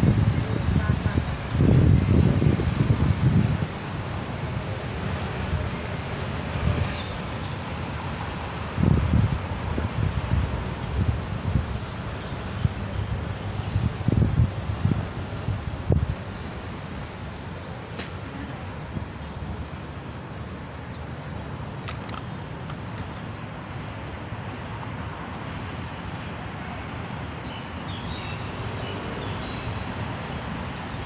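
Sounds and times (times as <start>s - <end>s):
wind buffeting microphone: 0.0s - 20.6s.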